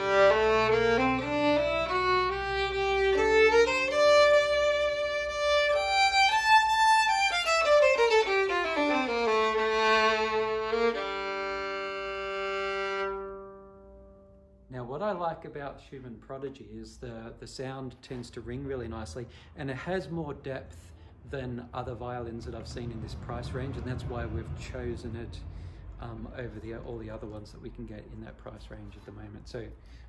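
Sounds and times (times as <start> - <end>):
bowed violin notes: 0.0 - 14.7.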